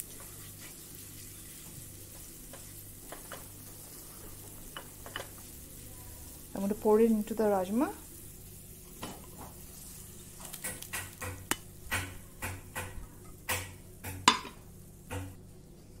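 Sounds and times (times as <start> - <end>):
light sizzle: 0.0 - 16.0.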